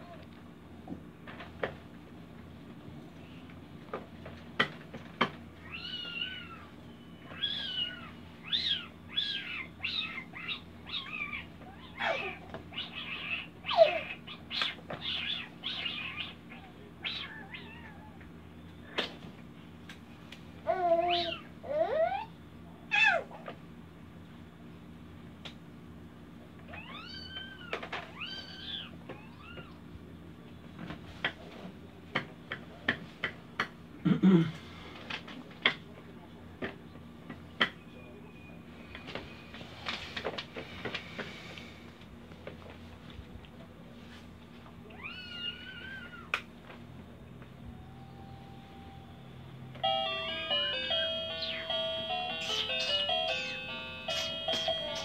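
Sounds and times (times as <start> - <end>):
baby squealing: 7.4 - 14.4.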